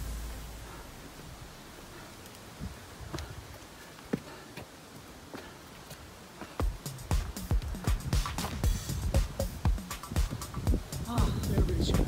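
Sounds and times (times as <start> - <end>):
low thumps: 0.0 - 1.6, 6.6 - 12.0
footsteps crunching on gravel: 2.6 - 9.8.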